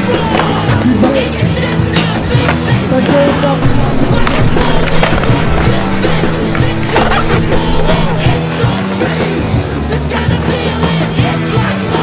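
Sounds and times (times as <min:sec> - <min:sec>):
music track: 0:00.0 - 0:09.9
skateboard clacks: 0:00.0 - 0:12.0
skateboard wheels rolling on concrete: 0:00.0 - 0:12.0.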